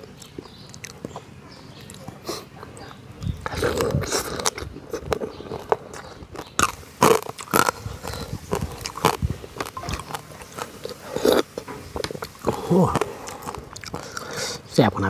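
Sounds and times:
chewing crab shell crunches: 0.0 - 14.7.

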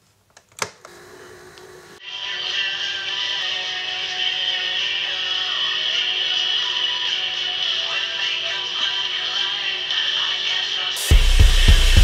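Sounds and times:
tape recorder running hum: 0.3 - 2.0.

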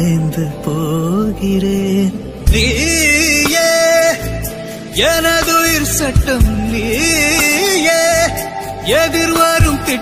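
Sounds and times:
steady low bass: 0.0 - 3.5, 4.2 - 10.0.

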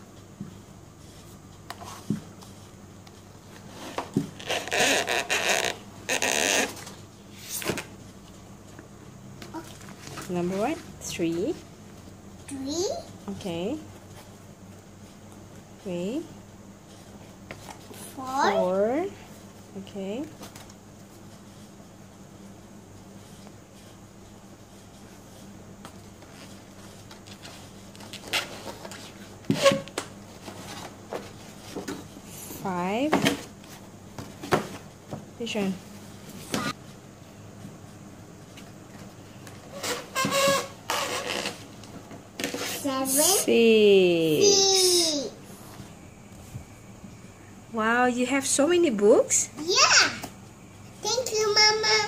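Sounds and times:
books rustling: 9.4 - 12.2.

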